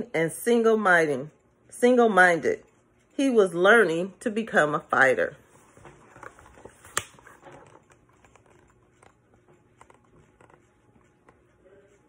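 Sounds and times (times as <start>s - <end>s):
paper page flick: 6.7s - 7.4s.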